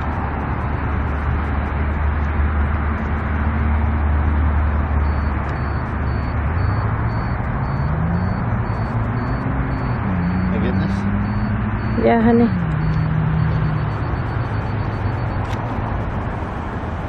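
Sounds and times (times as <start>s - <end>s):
car engine hum: 0.0s - 17.0s
road noise: 0.0s - 17.0s.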